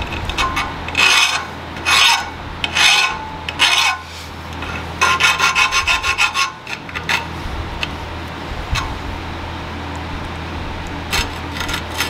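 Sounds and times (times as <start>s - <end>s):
metal file scraping steel: 0.0s - 7.4s.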